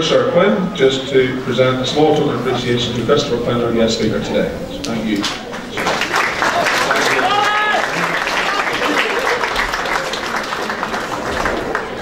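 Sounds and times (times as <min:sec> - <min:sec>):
audience applauding: 0:05.2 - 0:12.0.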